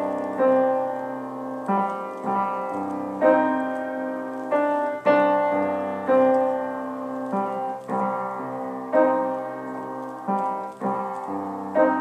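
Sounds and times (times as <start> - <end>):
slow piano chords: 0.0 - 12.0.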